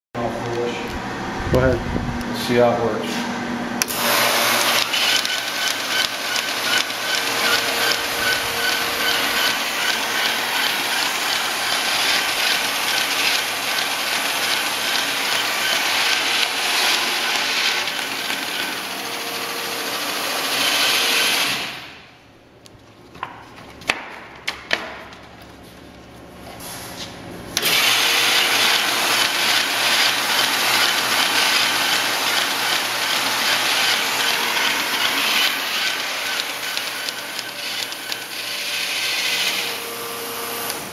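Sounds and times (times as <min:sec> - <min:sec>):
paper folding machine whirring: 0:03.8 - 0:22.0, 0:27.6 - 0:40.9
sharp clicks: 0:04.8 - 0:10.8.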